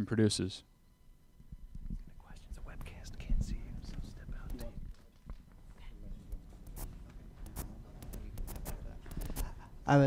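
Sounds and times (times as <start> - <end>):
whispering and murmured voices: 1.9 - 9.6.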